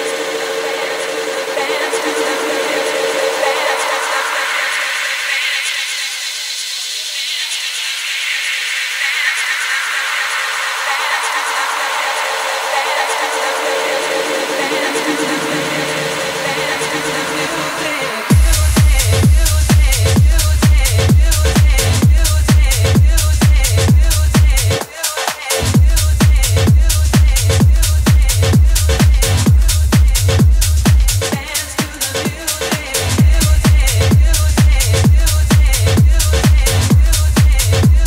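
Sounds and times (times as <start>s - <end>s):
electronic dance music build-up: 0.0s - 38.0s.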